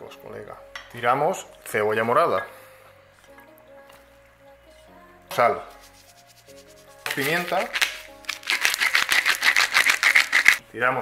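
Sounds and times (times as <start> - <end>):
pepper mill grinding: 7.0 - 10.6.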